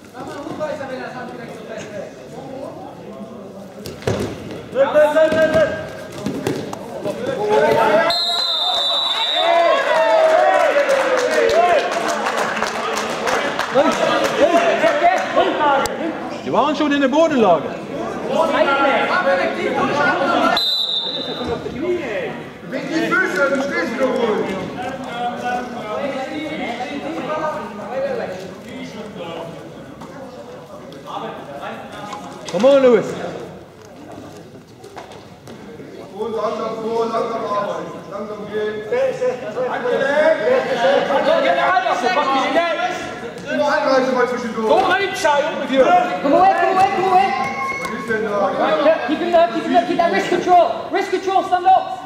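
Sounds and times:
referee's whistle: 8.0s - 9.5s, 20.5s - 21.5s.

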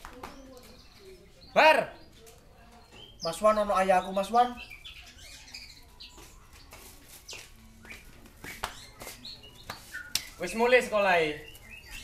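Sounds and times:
faint bird chirps: 0.2s - 12.0s.

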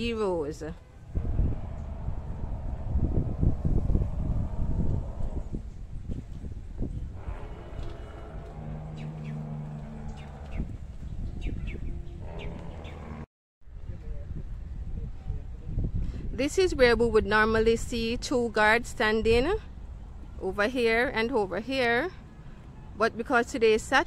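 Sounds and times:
wind rumble: 0.7s - 21.3s
steady low hum: 1.1s - 6.1s
microphone handling noise: 1.2s - 12.8s
small birds chirping: 7.6s - 13.2s.

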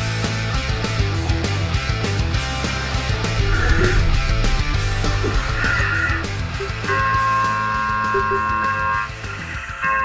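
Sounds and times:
rock music: 0.0s - 9.5s
harsh high tone: 3.2s - 9.0s.

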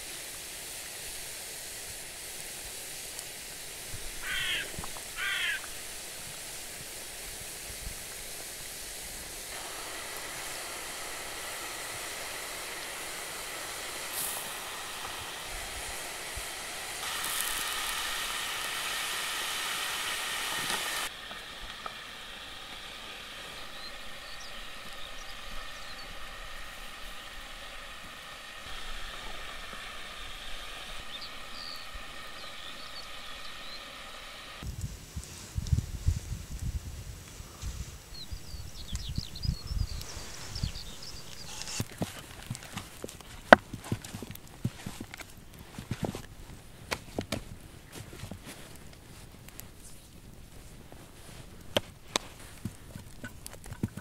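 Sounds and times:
meat sizzling in hot fat: 0.0s - 37.1s, 37.8s - 45.9s
outdoor background: 0.0s - 54.0s
sharp crackles: 13.0s - 22.0s, 34.6s - 54.0s.

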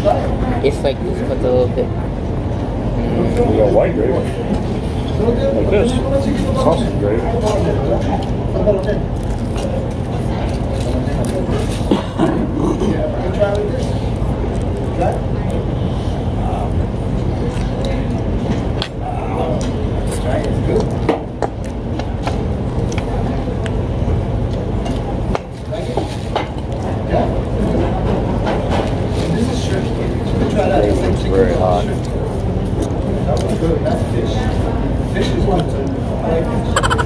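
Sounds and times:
indistinct diners' voices: 0.0s - 37.0s.

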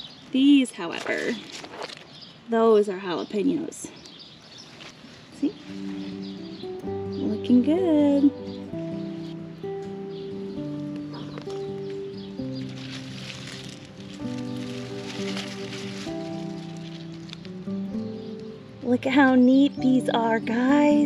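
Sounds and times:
gentle background music: 5.4s - 21.0s.

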